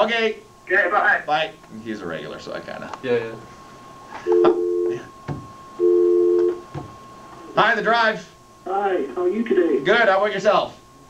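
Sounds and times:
phone line click: 0:05.8 - 0:06.6
telephone dial tone: 0:05.8 - 0:06.6.

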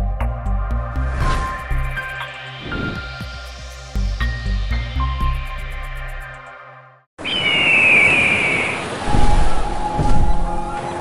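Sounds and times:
steady wind-like rush: 0:07.2 - 0:11.0.

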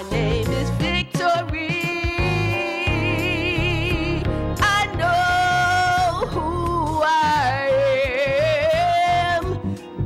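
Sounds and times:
woman singing gospel: 0:00.0 - 0:09.6.

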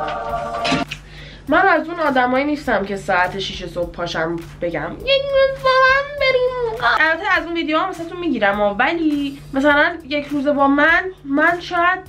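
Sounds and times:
woman talking: 0:01.5 - 0:12.0.

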